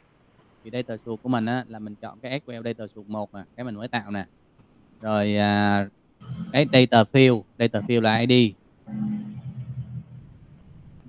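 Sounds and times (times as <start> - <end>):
faint background noise: 0.0 - 11.0
man's drawn-out hesitation sound: 6.5 - 8.6.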